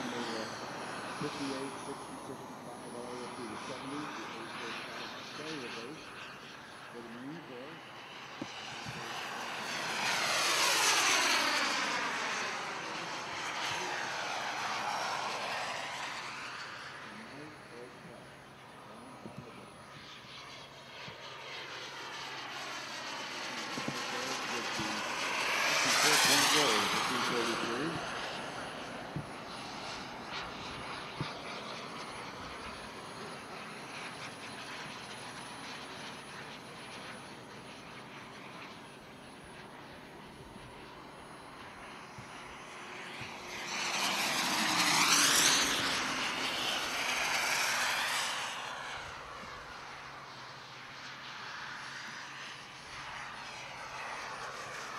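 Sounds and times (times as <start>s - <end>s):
model jet turbine flying past: 0.0s - 54.9s.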